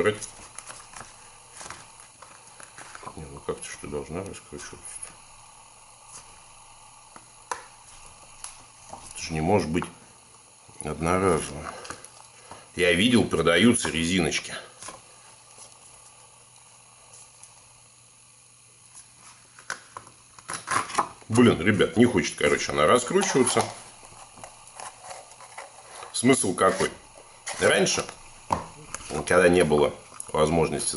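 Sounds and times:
rubbing and handling noise: 0.0 - 3.5, 23.2 - 30.7.

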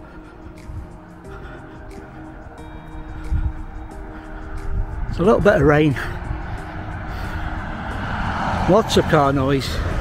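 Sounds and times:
car passing on wet road: 6.2 - 10.0.

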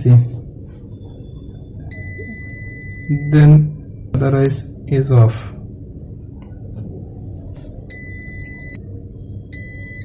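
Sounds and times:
high-pitched buzzer beep: 1.9 - 3.5, 7.9 - 8.8, 9.5 - 10.0.

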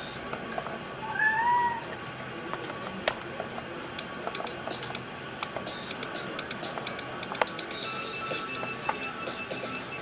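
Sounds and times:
kitten meowing: 1.0 - 1.9.

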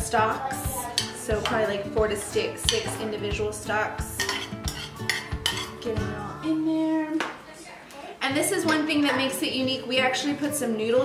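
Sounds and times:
metal spoon scraping a bowl: 0.8 - 3.2, 4.1 - 6.1.

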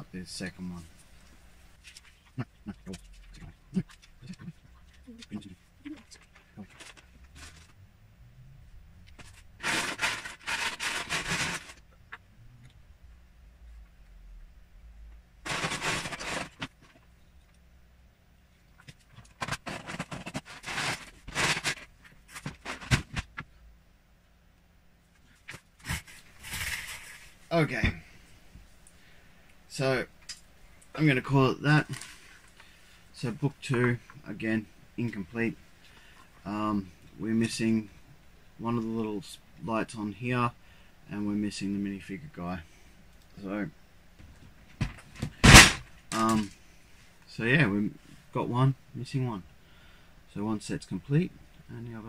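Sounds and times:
plastic bricks rattling in tub: 15.5 - 16.9.

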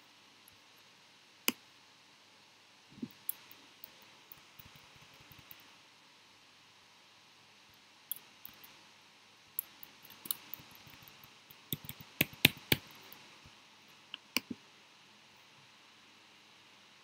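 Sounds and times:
mouse clicks: 9.6 - 13.2
keyboard keystrokes: 11.7 - 13.0.

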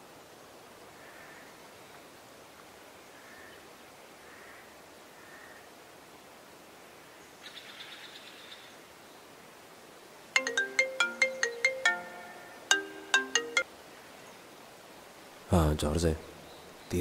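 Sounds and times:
smartphone ringtone melody: 10.4 - 13.6.

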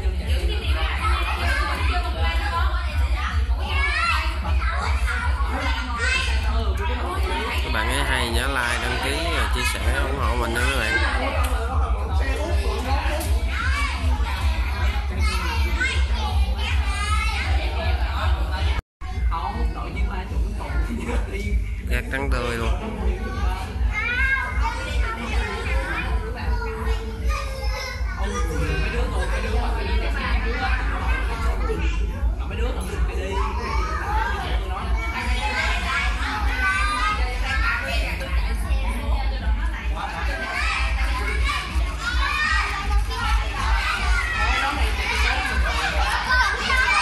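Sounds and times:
children shouting and chattering: 0.0 - 47.0.

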